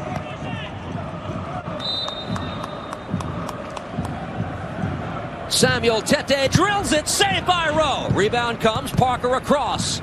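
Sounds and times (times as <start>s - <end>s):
referee whistle: 1.8s - 3.0s.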